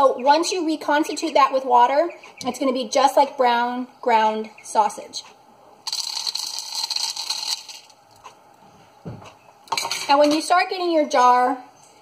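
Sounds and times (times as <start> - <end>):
dry crumbles pouring into glass jar: 5.9 - 8.0.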